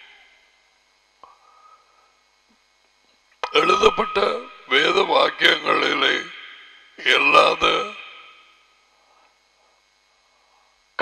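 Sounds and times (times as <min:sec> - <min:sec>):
man speaking forcefully: 0:03.4 - 0:06.4, 0:07.0 - 0:08.2.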